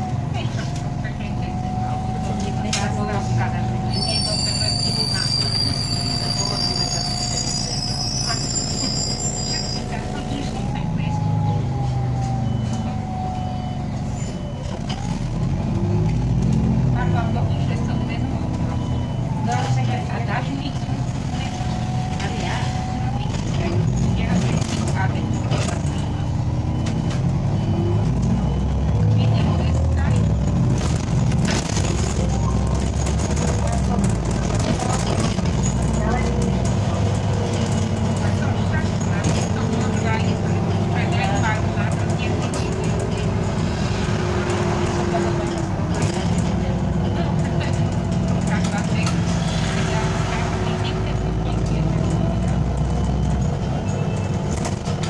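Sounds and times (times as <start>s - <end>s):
bus engine drone with whine: 0.0s - 55.0s
body rattles and clicks: 30.2s - 40.1s.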